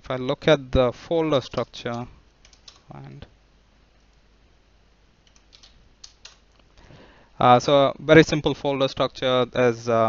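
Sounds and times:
keystrokes on computer keyboard: 1.5s - 2.9s, 5.2s - 6.6s.

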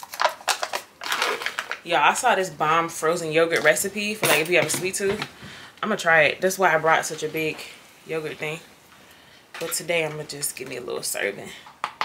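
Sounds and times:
plastic bag crinkling: 0.0s - 2.3s.

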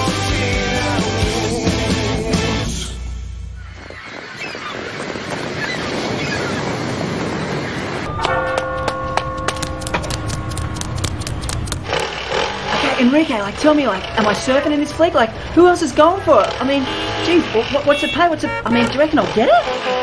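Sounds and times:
music: 0.0s - 3.0s, 8.1s - 11.8s
street traffic rushing: 6.7s - 20.0s
steady held tones: 8.1s - 15.3s
quick run of clicks: 9.5s - 12.0s.

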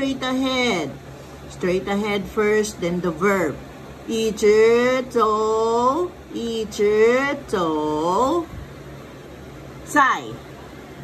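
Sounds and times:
woman speaking: 0.0s - 8.6s, 9.8s - 10.5s
low steady hum: 0.0s - 11.0s.

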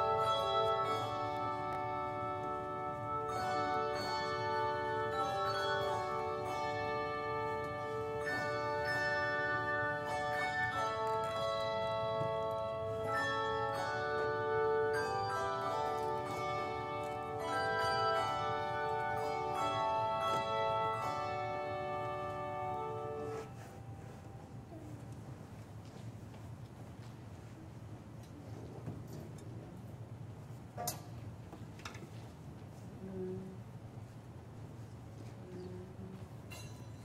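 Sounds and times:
handbell choir playing chords: 0.0s - 24.3s, 36.5s - 37.0s.

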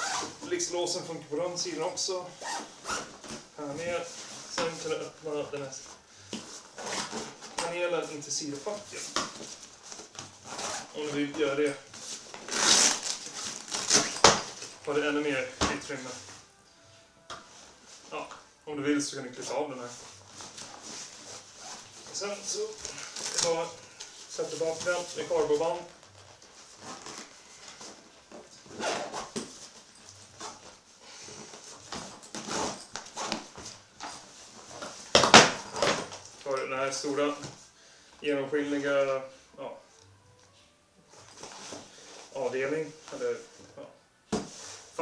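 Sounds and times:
nylon fabric rustling: 0.0s - 37.6s.

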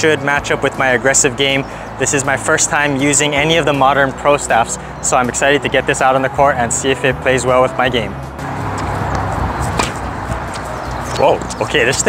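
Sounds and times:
music: 0.0s - 12.0s
steady rushing noise: 8.3s - 12.0s
tennis ball struck by racket: 8.4s - 11.6s.

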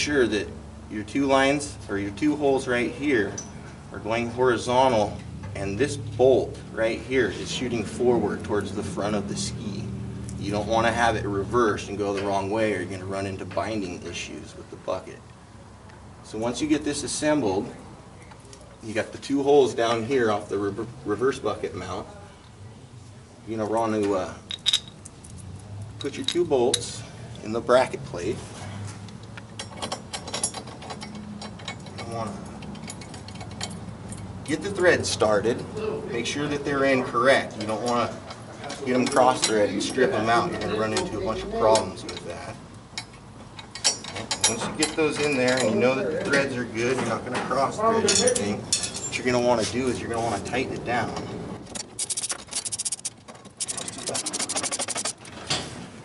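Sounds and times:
small metal clicks and clinks: 29.1s - 34.4s
hand ratchet clicking: 51.7s - 55.3s.

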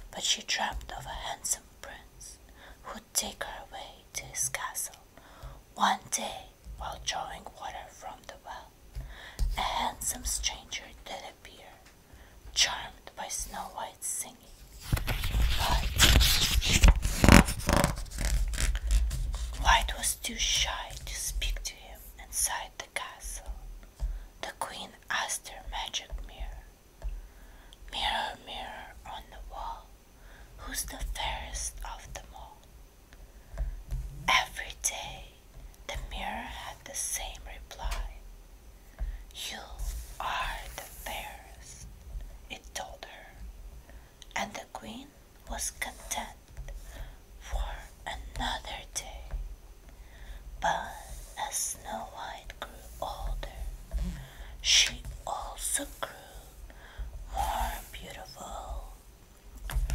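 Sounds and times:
woman whispering: 0.1s - 5.1s, 5.8s - 8.7s, 9.5s - 11.9s, 12.5s - 16.2s, 19.5s - 23.6s, 24.4s - 26.7s, 27.9s - 29.9s, 30.6s - 32.6s, 34.2s - 38.2s, 39.4s - 43.4s, 44.2s - 46.5s, 47.4s - 49.4s, 50.6s - 56.6s, 57.3s - 59.0s
paper page turning: 14.8s - 19.6s.

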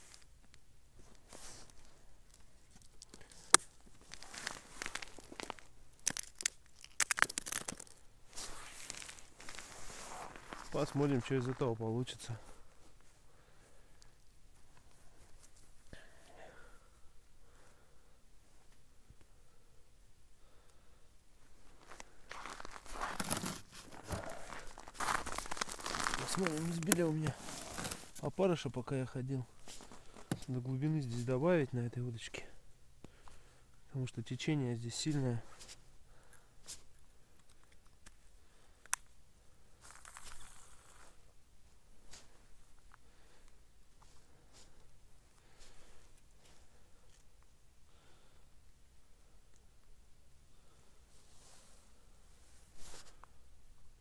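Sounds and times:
crunching on snow-crusted ice: 1.2s - 12.7s, 21.6s - 28.6s, 39.8s - 41.2s
clothing rustling: 8.3s - 10.9s, 22.4s - 28.2s
person speaking: 10.5s - 12.6s, 24.0s - 29.5s.

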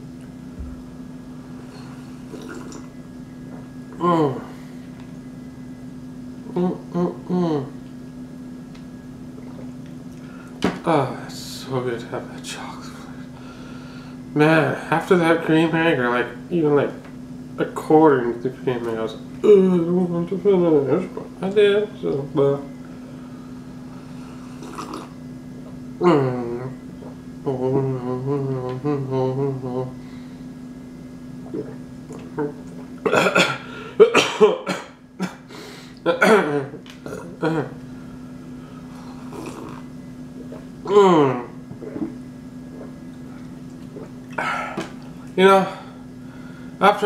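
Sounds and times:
steady low hum: 0.0s - 47.0s
person sipping milk: 1.5s - 3.0s, 9.3s - 10.6s, 24.0s - 27.3s, 31.4s - 33.1s, 37.0s - 45.4s
person swallowing: 1.8s - 3.0s, 9.3s - 9.9s, 24.6s - 29.6s, 31.4s - 35.4s, 36.0s - 37.8s, 39.0s - 45.3s.

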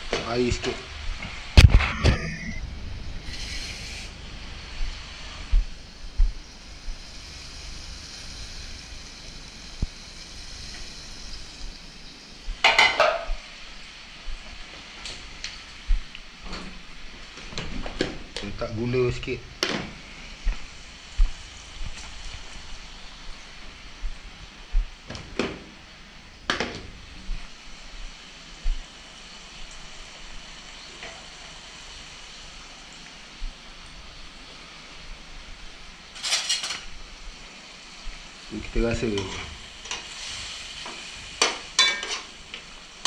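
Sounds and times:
food sizzling in a pan: 0.0s - 25.0s, 26.9s - 43.0s.

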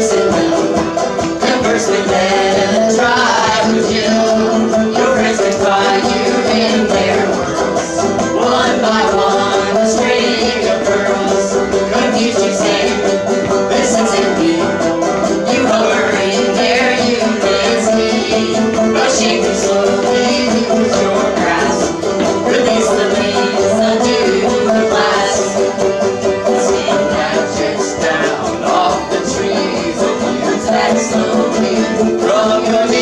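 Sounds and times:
banjo: 0.0s - 33.0s
guitar: 0.0s - 33.0s.

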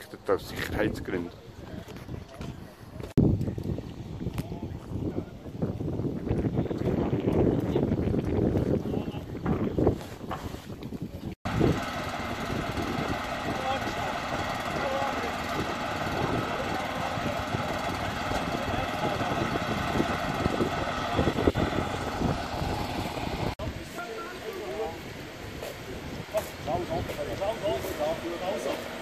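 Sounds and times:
engine running steadily: 11.5s - 23.7s, 24.5s - 29.0s.

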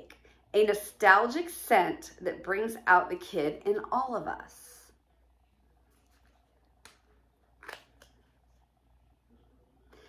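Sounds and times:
plastic cup crackle: 5.9s - 8.2s.

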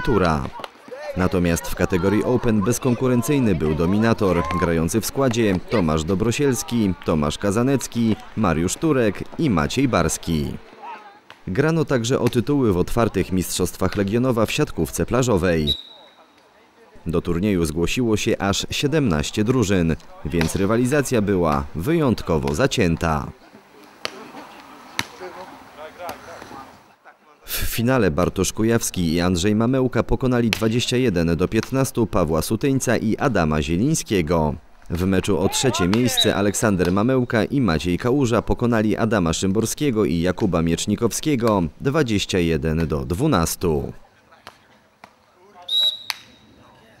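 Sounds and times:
referee whistle blast: 15.6s - 16.2s, 45.7s - 46.6s
faint voices: 18.8s - 27.6s.

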